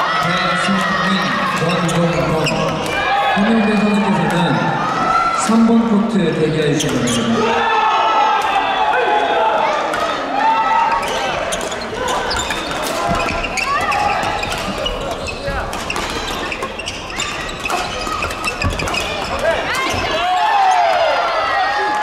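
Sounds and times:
players chattering: 0:00.0 - 0:22.0
shoes squeaking on court floor: 0:00.6 - 0:03.0, 0:06.7 - 0:07.4, 0:10.8 - 0:21.0.

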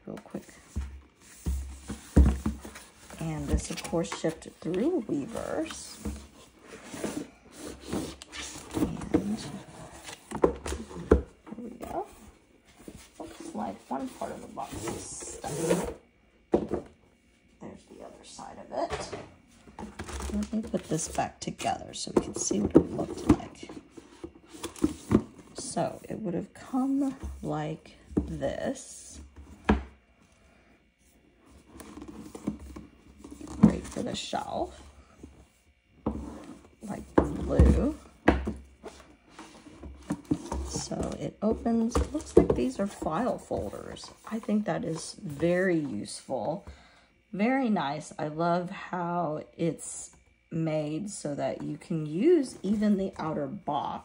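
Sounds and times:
cardboard rubbing and scraping: 0:12.9 - 0:16.0.

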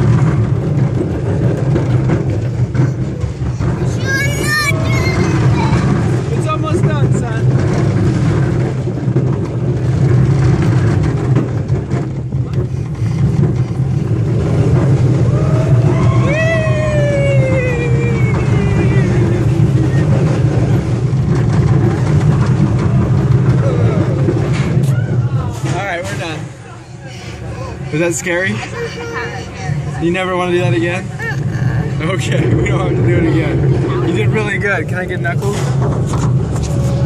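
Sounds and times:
roller coaster rumbling on track: 0:00.0 - 0:37.0
long falling whine: 0:14.6 - 0:21.5.

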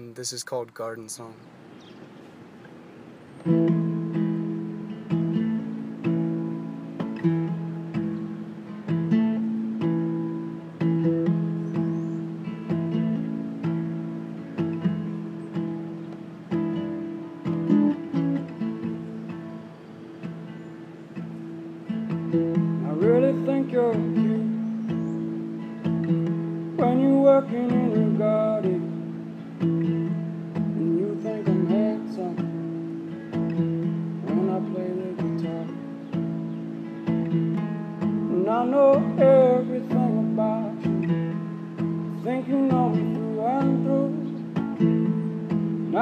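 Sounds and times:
acoustic guitar strumming: 0:02.6 - 0:46.0.

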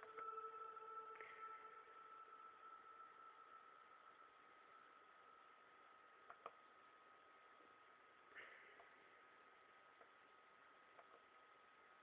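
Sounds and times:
thin high steady tone: 0:00.0 - 0:06.2
faint steady hiss: 0:00.0 - 0:12.0.

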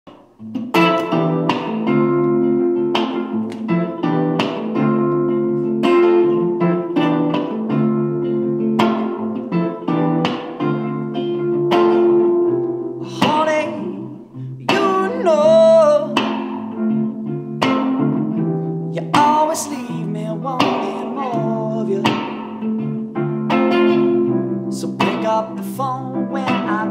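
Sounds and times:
electric guitar ringing chords: 0:00.1 - 0:26.9.

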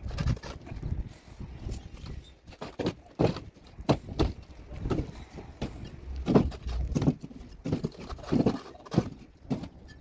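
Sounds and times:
trowel scraping and tapping mortar: 0:02.6 - 0:10.0.

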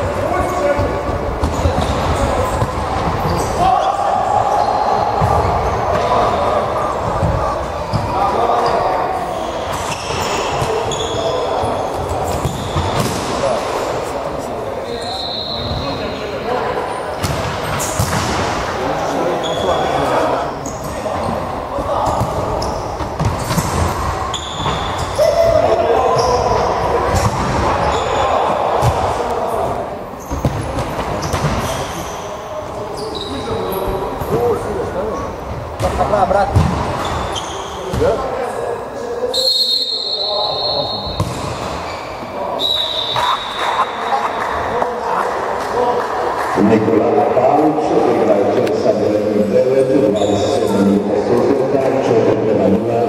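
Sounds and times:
people shouting and chattering: 0:00.0 - 0:53.0
shoes squeaking: 0:07.9 - 0:13.2, 0:19.4 - 0:28.6, 0:30.2 - 0:34.5, 0:36.6 - 0:38.2
ball kicks and bounces: 0:41.2 - 0:41.7.

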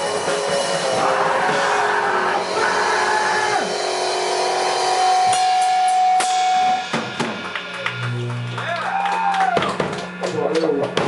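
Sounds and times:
punk band playing: 0:00.0 - 0:11.0.

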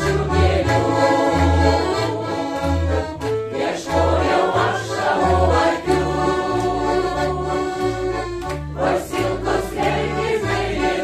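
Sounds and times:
mixed choir singing: 0:00.0 - 0:11.0
piano accordion playing: 0:00.0 - 0:11.0.

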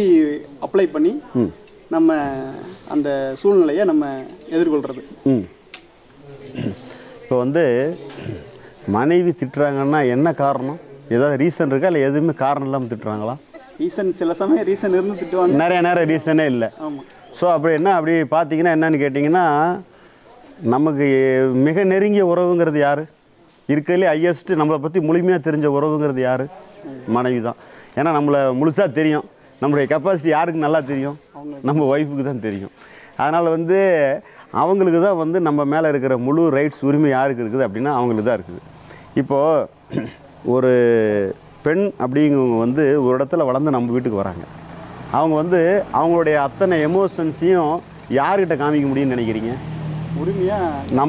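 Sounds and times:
man speaking: 0:00.0 - 0:05.6, 0:06.2 - 0:19.9, 0:23.7 - 0:44.5, 0:50.2 - 0:51.0
crickets chirping drone: 0:00.0 - 0:51.0
man talking: 0:06.2 - 0:19.9, 0:23.7 - 0:38.6, 0:39.2 - 0:44.5, 0:45.2 - 0:51.0.

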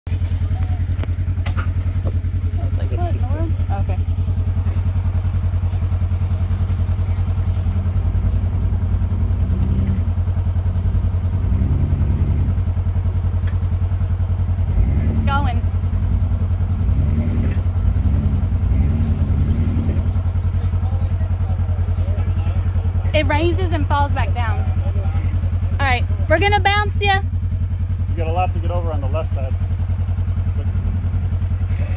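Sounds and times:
vehicle engine running and revving: 0:00.1 - 0:31.9.

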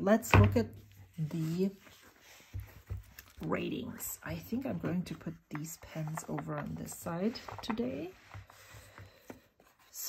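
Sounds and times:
paper rustling: 0:01.4 - 0:10.0.

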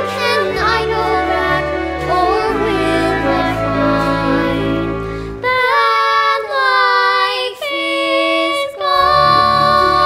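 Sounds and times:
girl singing: 0:00.0 - 0:10.0.

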